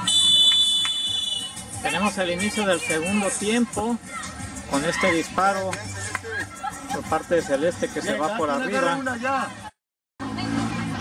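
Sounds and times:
referee's whistle blast: 0.0 - 1.6.

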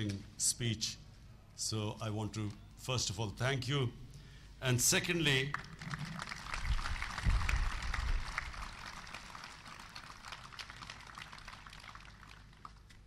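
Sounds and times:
audience applauding: 5.5 - 13.0.

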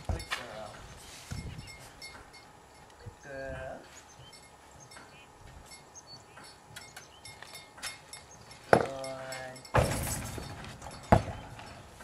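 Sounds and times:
hooves on trailer floor: 0.0 - 3.0, 3.8 - 12.0.

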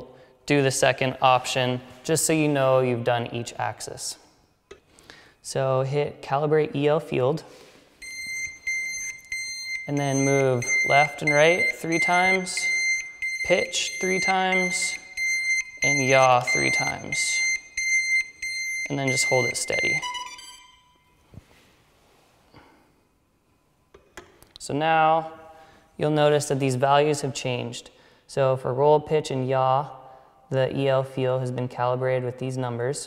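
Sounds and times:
buzzer beeping high tone: 8.0 - 21.1.

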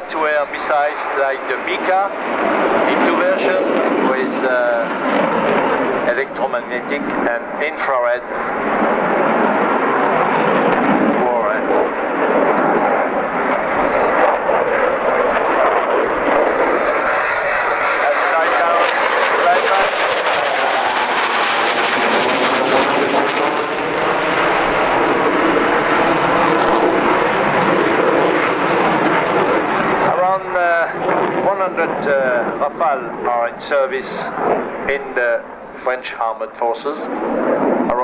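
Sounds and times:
fighter jet flying overhead: 0.0 - 38.0.

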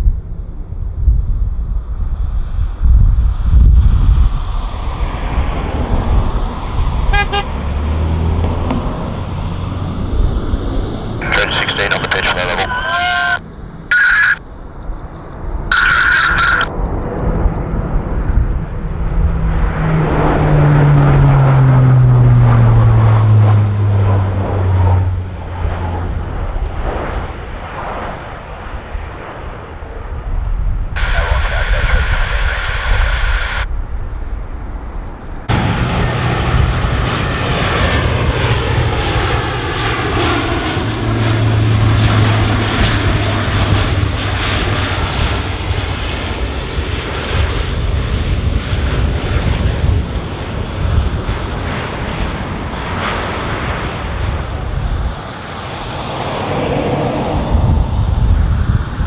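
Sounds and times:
aircraft propeller drone: 0.0 - 59.0.

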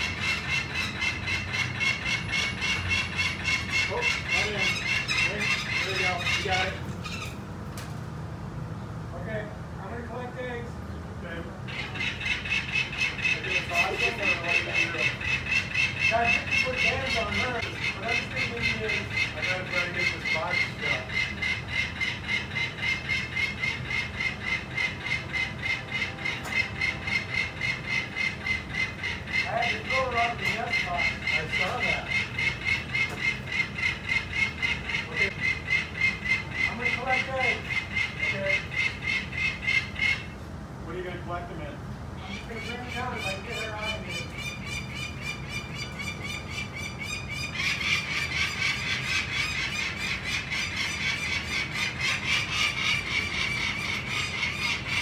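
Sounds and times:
falcon cacking alarm call: 0.0 - 7.3, 11.7 - 40.4.

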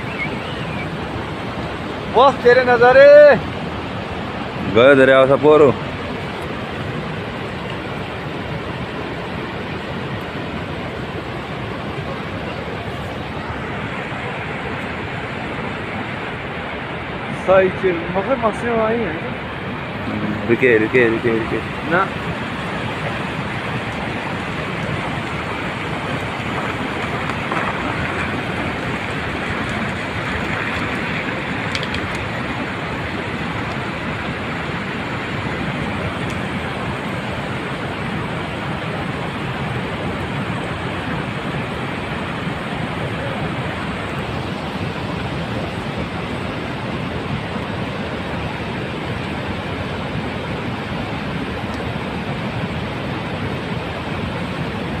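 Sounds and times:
wet snow avalanche rushing: 0.0 - 55.0.

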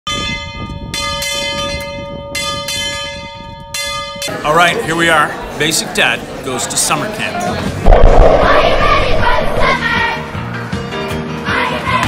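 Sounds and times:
large bell ringing: 0.1 - 4.6
low rumble: 7.8 - 10.2.

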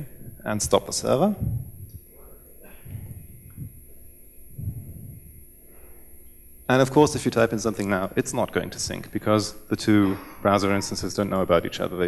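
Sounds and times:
soft muffled mouth sounds: 0.0 - 6.1
low electrical hum: 0.0 - 12.0
faint breaths: 1.2 - 6.3.

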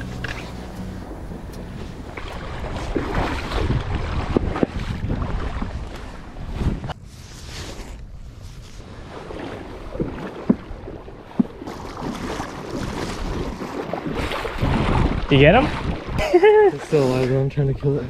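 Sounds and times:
water splashing from wading: 0.0 - 6.5, 9.0 - 17.5
wind buffeting microphone: 0.0 - 18.0.

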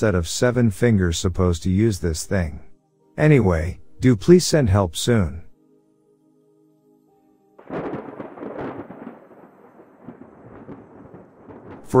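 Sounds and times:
thunder clap and rumble: 7.6 - 12.0
hissing rain-like wash: 7.7 - 12.0.

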